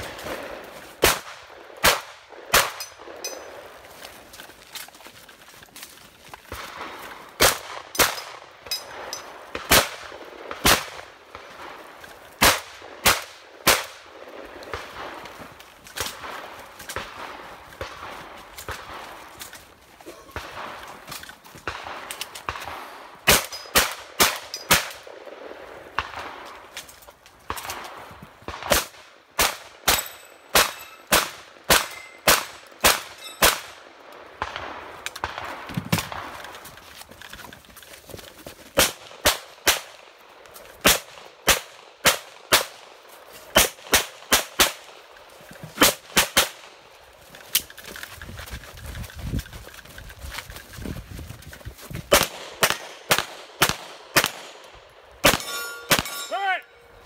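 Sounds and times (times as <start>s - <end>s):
shotgun shots: 0.0s - 3.2s, 6.5s - 11.8s, 12.4s - 15.2s, 21.6s - 26.5s, 27.5s - 33.8s, 38.8s - 40.1s, 40.8s - 45.0s, 45.8s - 46.7s, 52.1s - 56.4s.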